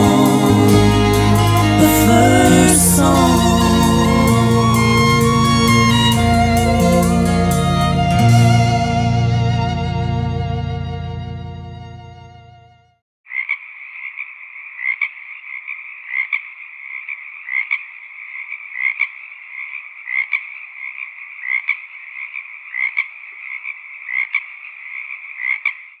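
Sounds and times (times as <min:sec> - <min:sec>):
sustained musical chord: 0:00.0 - 0:12.8
frogs trilling: 0:13.3 - 0:26.0.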